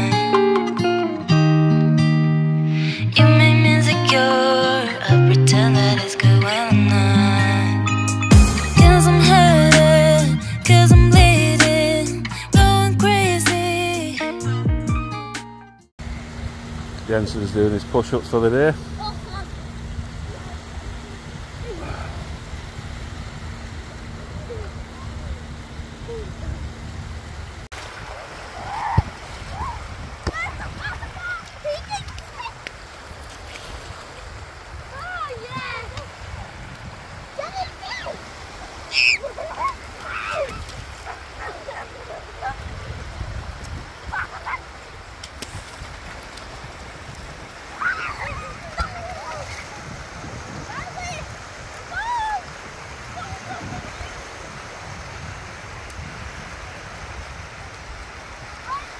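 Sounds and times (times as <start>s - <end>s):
small waves washing on sand: 16.1s - 58.9s
distant voices and calls: 37.2s - 42.9s, 47.6s - 54.5s.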